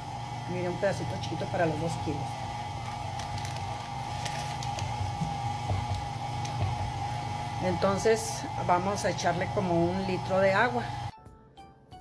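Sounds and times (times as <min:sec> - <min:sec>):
stand mixer motor humming: 0:00.0 - 0:11.1.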